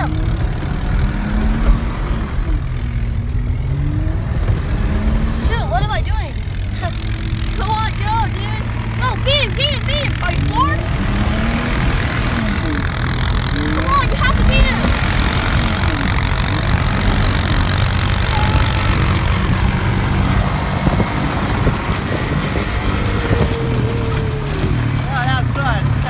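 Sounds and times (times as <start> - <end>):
quad engine droning: 0.0 - 26.0.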